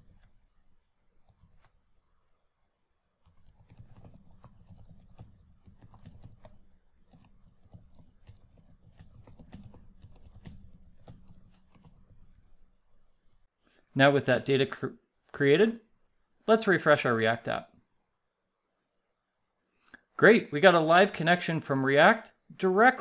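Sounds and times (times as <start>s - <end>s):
keyboard typing: 0.0s - 0.5s, 1.2s - 2.4s, 3.2s - 12.6s.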